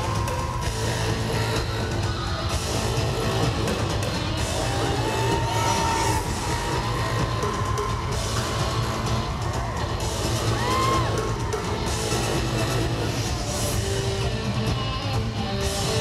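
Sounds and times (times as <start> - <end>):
live pop music with drums: 0.0 - 16.0.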